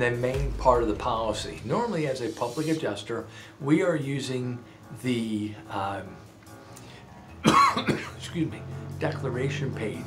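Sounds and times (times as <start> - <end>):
man coughing: 7.4 - 8.2.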